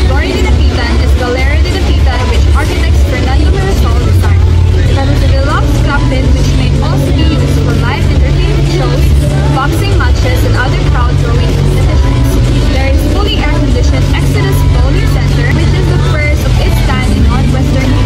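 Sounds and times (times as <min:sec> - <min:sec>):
loud low rumble: 0:00.0 - 0:18.0
voices in background: 0:00.0 - 0:18.0.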